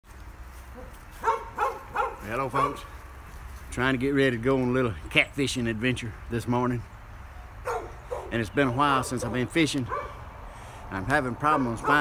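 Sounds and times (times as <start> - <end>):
dog barking: 0.8 - 2.9, 7.6 - 8.4, 9.0 - 10.2, 11.5 - 12.0.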